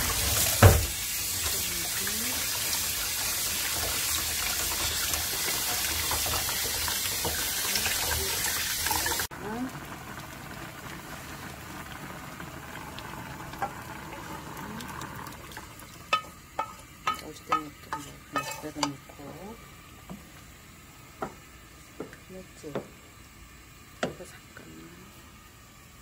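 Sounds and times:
soup bubbling in a pan: 0:00.0 - 0:21.8
tap running into sink: 0:00.4 - 0:01.0
wooden spatula stirring: 0:16.1 - 0:19.4.

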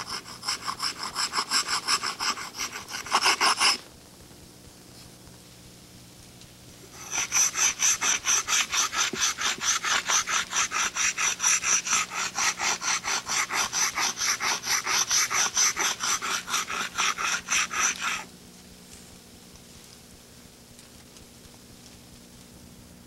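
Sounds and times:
stone grinding on stone slab: 0:00.0 - 0:03.8, 0:07.0 - 0:18.3.

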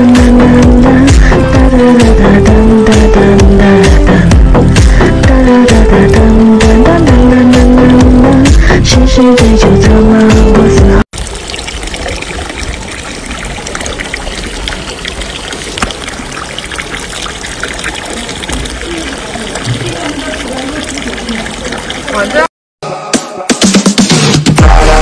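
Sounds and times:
loud music: 0:00.0 - 0:11.0, 0:22.8 - 0:25.0
water trickling and lapping in a pool: 0:11.1 - 0:22.5
faint voices: 0:18.0 - 0:22.5.

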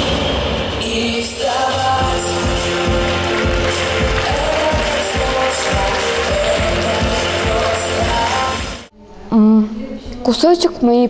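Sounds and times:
dance music with steady beat: 0:00.9 - 0:08.9.

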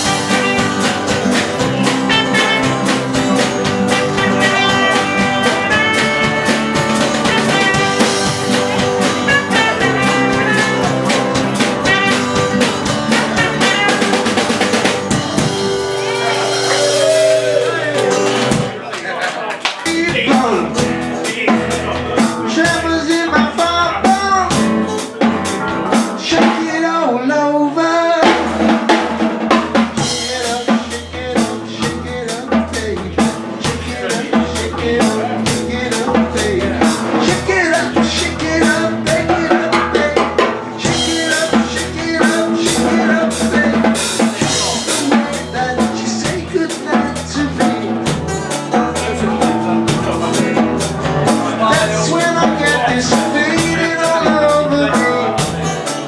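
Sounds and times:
low bass notes: 0:00.0 - 0:18.8, 0:29.9 - 0:56.0
strummed acoustic guitar: 0:00.0 - 0:18.9, 0:19.8 - 0:27.2, 0:28.2 - 0:56.0
drum kit: 0:00.0 - 0:27.2, 0:28.0 - 0:56.0
bending lead guitar line: 0:00.0 - 0:56.0.

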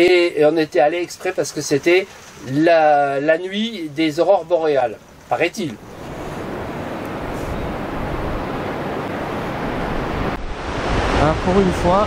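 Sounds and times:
surf: 0:00.0 - 0:12.0
wind: 0:00.0 - 0:12.0
wind rumbling on microphone: 0:05.8 - 0:12.0.

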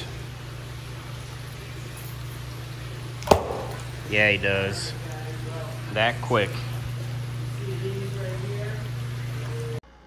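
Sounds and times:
steady low hum: 0:00.0 - 0:10.0
fish splashing at water surface: 0:00.9 - 0:04.1.

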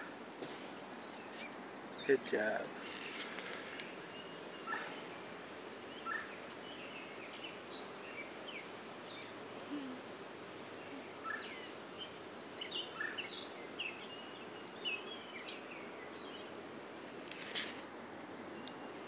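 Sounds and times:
steady outdoor hiss: 0:00.0 - 0:19.0
small birds chirping: 0:00.9 - 0:19.0.

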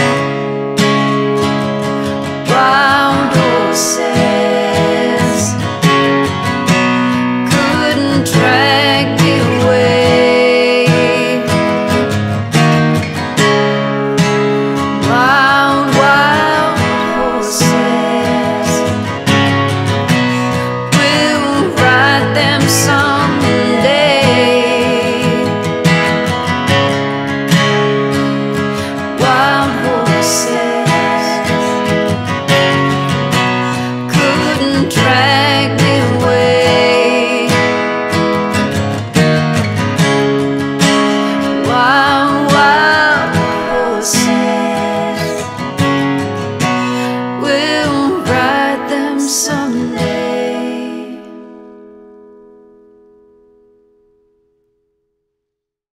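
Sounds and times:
acoustic guitar strumming: 0:00.0 - 0:54.8
woman singing: 0:02.2 - 0:12.2, 0:14.9 - 0:19.6, 0:20.3 - 0:26.3, 0:28.3 - 0:38.4, 0:41.2 - 0:46.0, 0:46.8 - 0:51.6.

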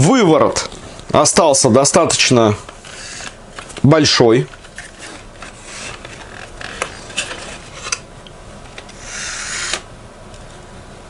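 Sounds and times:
rasping rub: 0:02.8 - 0:03.4.

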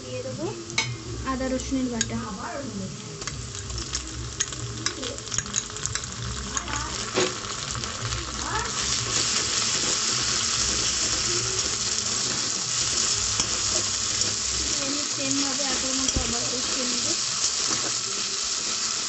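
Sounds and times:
food sizzling in oil: 0:00.0 - 0:19.0
metal spatula scraping wok: 0:08.7 - 0:18.1.

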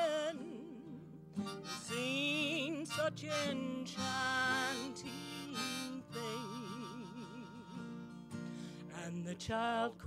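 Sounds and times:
acoustic guitar accompaniment: 0:00.0 - 0:10.0
harmonica playing: 0:01.4 - 0:08.3.

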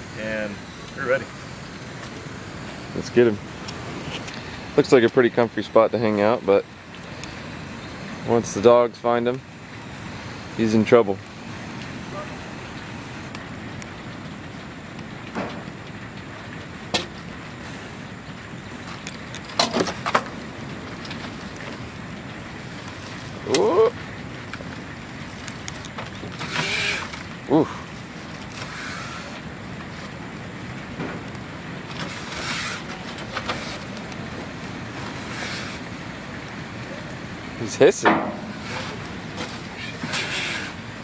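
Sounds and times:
steady rain falling: 0:00.0 - 0:41.0.

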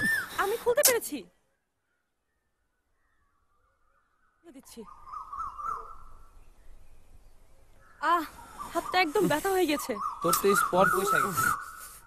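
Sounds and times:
bird warbling: 0:00.0 - 0:06.6, 0:07.8 - 0:12.0
faint background noise: 0:00.0 - 0:12.0.

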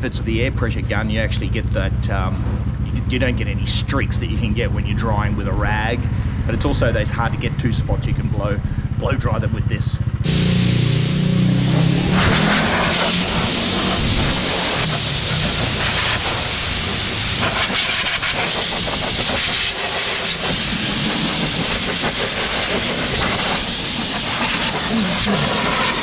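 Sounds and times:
low hum: 0:10.0 - 0:18.2
compressed air hissing: 0:10.2 - 0:26.0.

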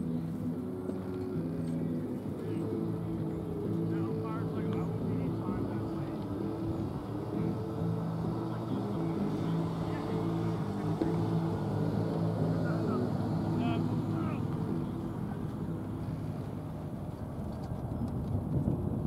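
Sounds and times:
low engine drone: 0:00.0 - 0:19.0.

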